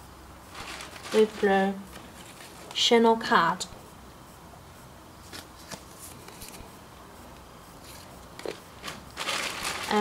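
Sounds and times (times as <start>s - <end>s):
plastic and paper card rustling: 0.5s - 2.8s, 5.2s - 6.7s, 7.8s - 10.0s.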